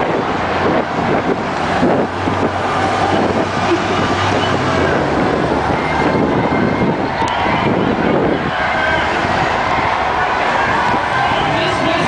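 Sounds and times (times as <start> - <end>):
cars passing close by: 0.0 - 12.0
crowd voices: 0.0 - 12.0.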